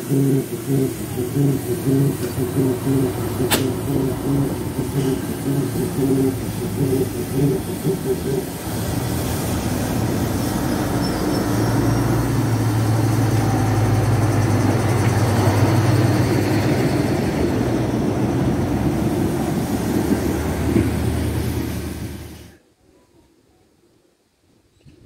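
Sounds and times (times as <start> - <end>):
diesel locomotive idling: 0.0 - 22.6.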